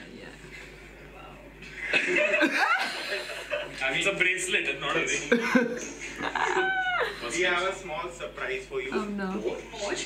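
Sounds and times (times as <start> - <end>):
people laughing: 1.6 - 3.9, 5.1 - 7.6
people speaking: 3.1 - 10.0.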